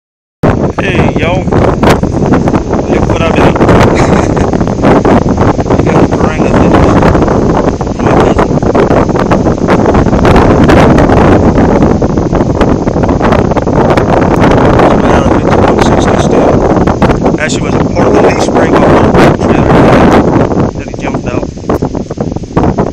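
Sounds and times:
wind buffeting microphone: 0.4 - 22.9.

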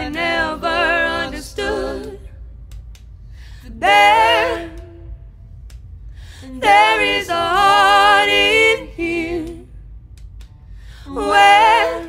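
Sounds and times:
vocal group singing in harmony: 0.0 - 2.6, 3.4 - 5.3, 6.2 - 9.8, 10.8 - 12.0
low steady hum: 0.0 - 12.0.

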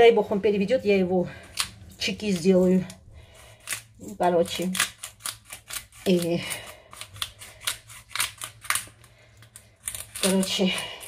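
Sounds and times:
knife cutting garlic: 1.4 - 11.0.

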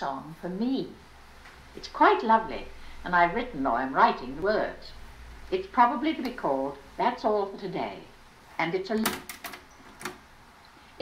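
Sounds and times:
faint tape hiss: 0.0 - 11.0.

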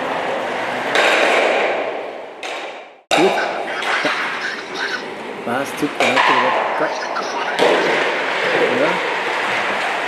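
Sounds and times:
men talking: 3.1 - 9.0.

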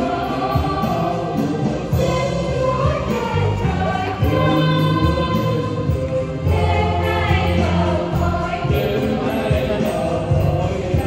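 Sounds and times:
church choir singing a hymn: 0.0 - 11.0.

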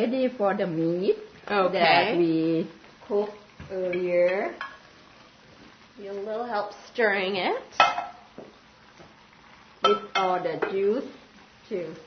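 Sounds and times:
metal tongs clinking on pan: 9.8 - 10.9.

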